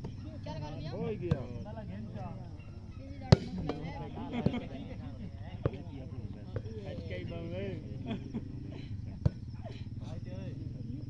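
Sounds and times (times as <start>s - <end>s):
people shouting and talking: 0.0s - 11.0s.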